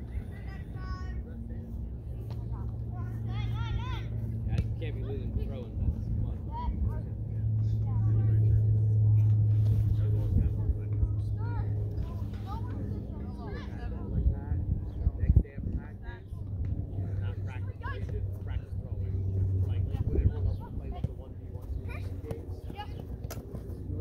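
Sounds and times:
motor vehicle engine hum: 0.0s - 24.0s.

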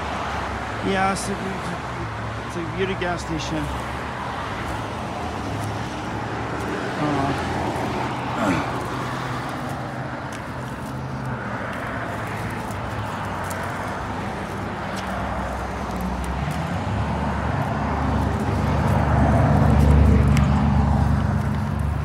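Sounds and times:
road traffic: 0.0s - 22.0s
vehicle engine passing: 3.2s - 22.0s.

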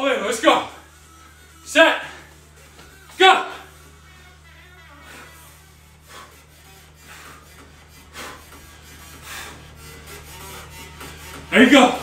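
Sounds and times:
steady low hum: 0.0s - 12.0s
rasp of push-ups on wooden floor: 4.4s - 12.0s.

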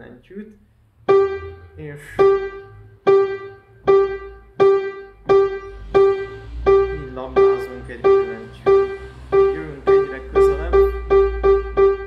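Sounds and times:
piano note repeated: 1.0s - 12.0s.

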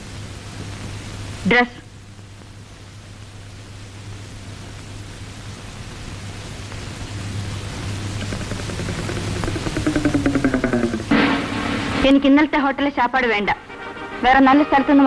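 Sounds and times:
film soundtrack hum and hiss: 0.0s - 15.0s.

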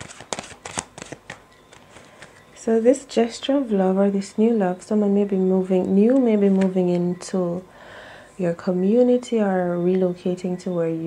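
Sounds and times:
playing cards being shuffled: 0.0s - 2.4s.

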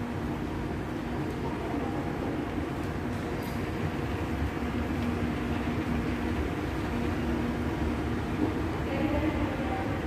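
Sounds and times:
moving walkway rumble: 0.0s - 10.0s.

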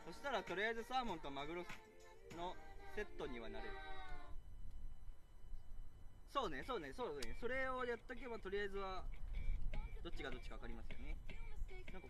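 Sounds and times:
low outdoor rumble: 2.5s - 12.0s.

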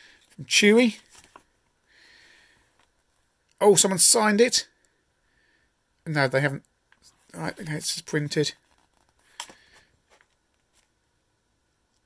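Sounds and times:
paper booklet rustling: 0.2s - 1.6s, 7.1s - 11.0s.

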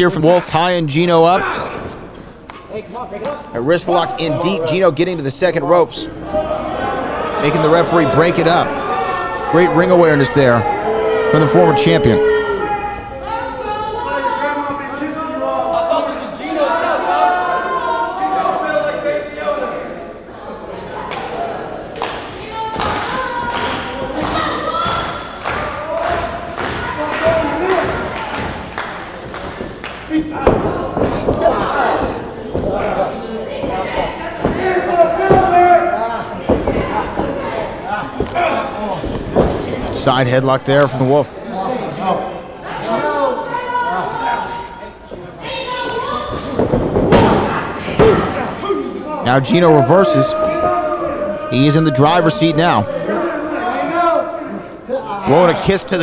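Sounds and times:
indistinct voices: 29.4s - 56.0s.

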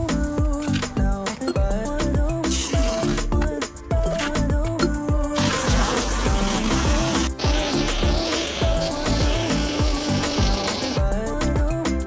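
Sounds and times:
background music with beat: 0.0s - 12.0s
hose spraying into plastic barrel: 2.5s - 3.3s, 5.4s - 11.0s.

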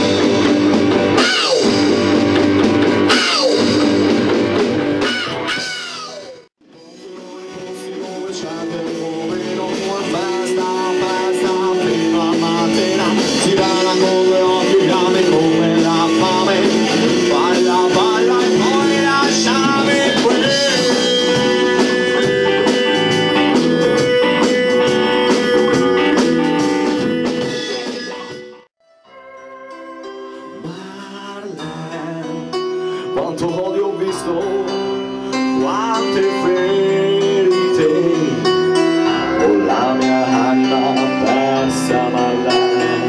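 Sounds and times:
electric guitar: 0.0s - 43.0s
rock band playing live: 0.0s - 43.0s.

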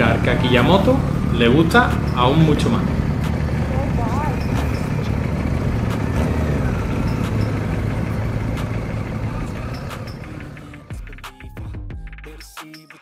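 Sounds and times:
people's voices: 0.0s - 10.9s
motorcycle engine running: 0.0s - 11.8s.

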